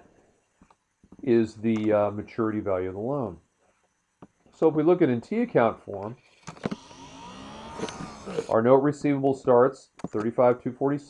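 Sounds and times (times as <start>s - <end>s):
mechanical whir: 6.5s - 8.5s.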